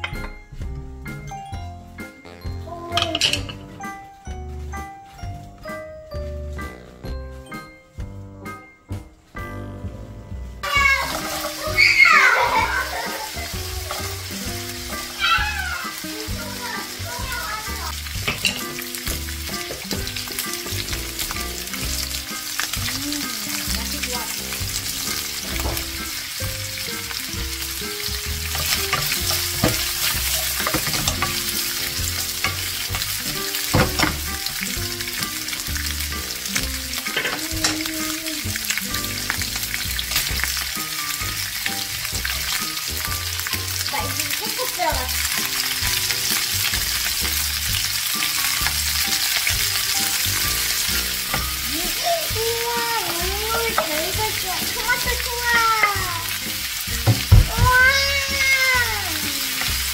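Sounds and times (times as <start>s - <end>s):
food sizzling in a frying pan: 10.4s - 59.9s.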